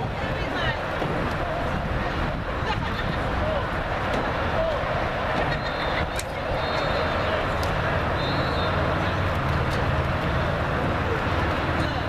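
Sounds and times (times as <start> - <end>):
faint distant voices: 0.0 - 12.0
outdoor noise: 0.0 - 12.0.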